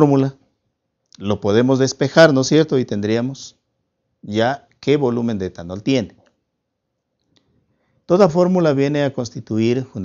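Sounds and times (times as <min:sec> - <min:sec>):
man speaking: 0:00.0 - 0:00.4, 0:01.1 - 0:03.6, 0:04.2 - 0:06.3, 0:08.1 - 0:10.0.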